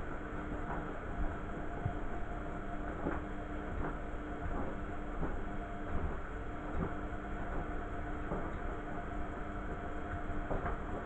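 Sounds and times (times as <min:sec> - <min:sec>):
drum tumbling wet laundry: 0:00.0 - 0:11.0
washing machine motor humming: 0:00.0 - 0:11.0.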